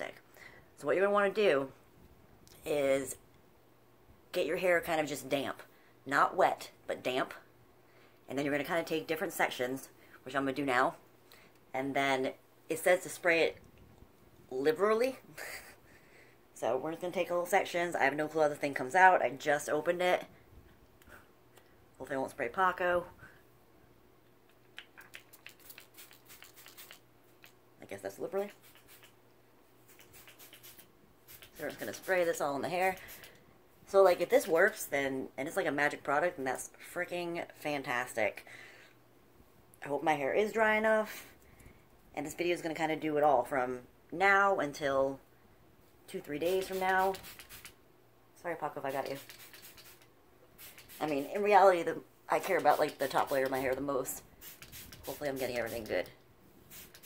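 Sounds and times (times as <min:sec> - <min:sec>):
spray bottle spritzes: 0:25.2 - 0:27.0, 0:28.5 - 0:29.2, 0:29.9 - 0:32.1, 0:46.5 - 0:47.8, 0:49.0 - 0:50.0, 0:50.6 - 0:51.4, 0:54.4 - 0:55.8, 0:56.7 - 0:57.0.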